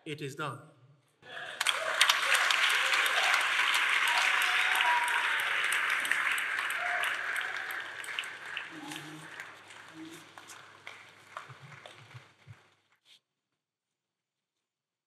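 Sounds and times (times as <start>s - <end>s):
congregation applauding: 1.2s - 12.8s
voices calling out: 1.3s - 10.6s.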